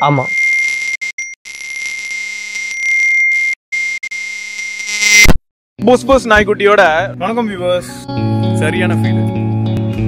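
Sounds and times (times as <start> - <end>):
smartphone ringing: 0.0 - 5.2.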